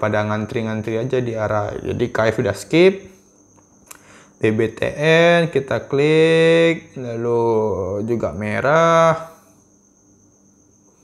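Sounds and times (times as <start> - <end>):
man speaking: 0.0 - 3.1, 4.4 - 9.4
faint high-pitched whine: 0.0 - 11.0.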